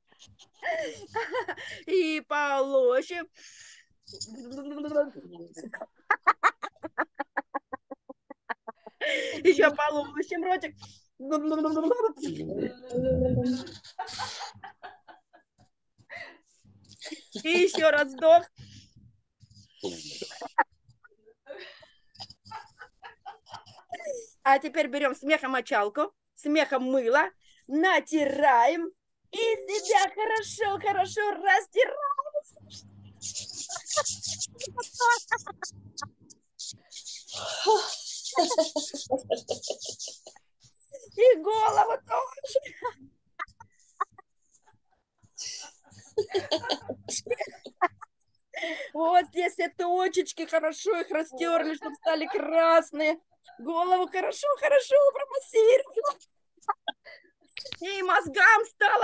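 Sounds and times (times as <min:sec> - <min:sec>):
woman laughing in staccato bursts: 0:32.6 - 0:40.4.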